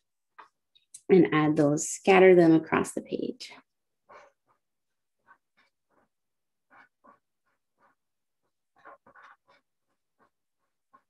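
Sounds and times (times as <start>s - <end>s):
felt-tip pen scratching on card: 3.9s - 11.0s.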